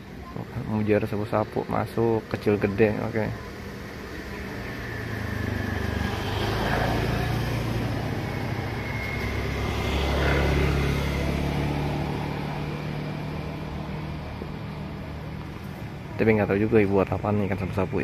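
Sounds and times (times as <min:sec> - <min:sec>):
vehicle engine passing: 0:03.9 - 0:18.0.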